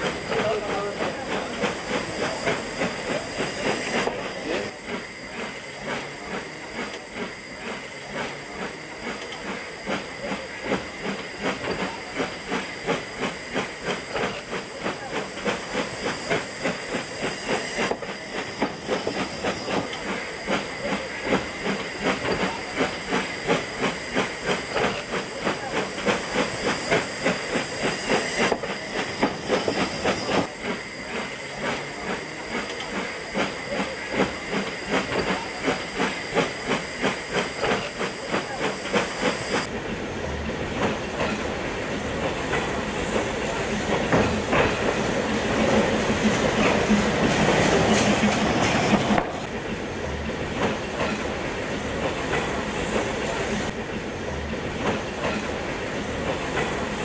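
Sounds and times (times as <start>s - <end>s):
steam hiss: 0.0s - 57.0s
steam locomotive exhaust chuffs: 0.0s - 57.0s
train rolling: 0.0s - 57.0s.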